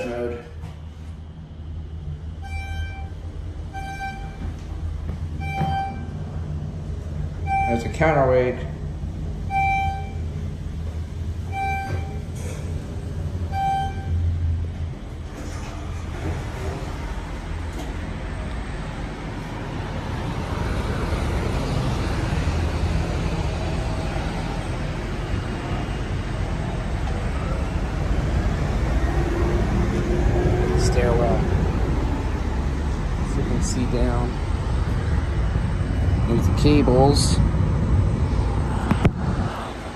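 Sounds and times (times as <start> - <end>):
low hum: 0.0 - 39.9
traffic rumble: 0.0 - 39.9
wind: 0.0 - 39.9
elevator beeping: 1.7 - 16.9.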